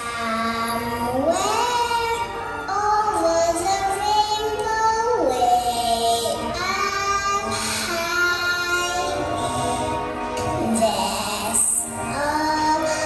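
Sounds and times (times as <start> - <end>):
backing music: 0.0 - 13.0
girl singing: 0.0 - 13.0.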